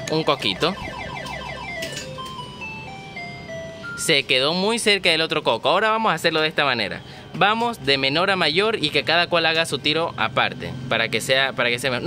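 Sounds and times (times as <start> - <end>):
slot machine beeps falling in pitch: 0.0 - 4.3.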